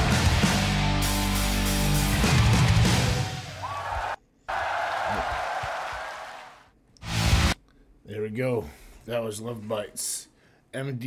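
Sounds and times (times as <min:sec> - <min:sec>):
crowd cheering and applauding: 0:02.2 - 0:06.7.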